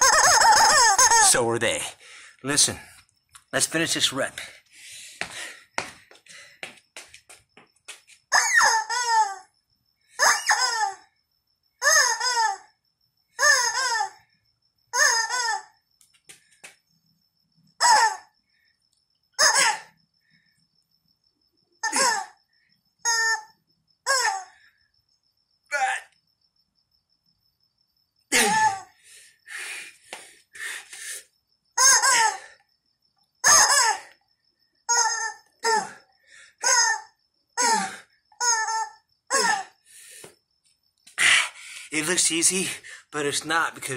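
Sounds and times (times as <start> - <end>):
rubber chicken squawking: 0.0 - 1.4, 8.3 - 9.4, 10.2 - 11.0, 11.8 - 12.6, 13.4 - 14.2, 15.0 - 15.7, 17.8 - 18.3, 19.4 - 19.9, 31.8 - 32.4, 33.4 - 34.0, 34.9 - 35.9, 36.6 - 37.8, 38.4 - 39.7.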